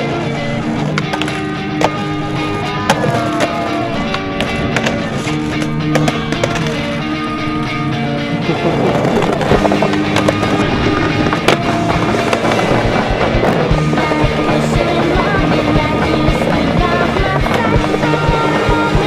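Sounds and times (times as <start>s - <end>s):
skateboard clacking against curbs: 0.0s - 7.1s, 8.6s - 19.0s
music: 0.0s - 19.0s
skateboard wheels rolling on concrete: 0.0s - 19.0s.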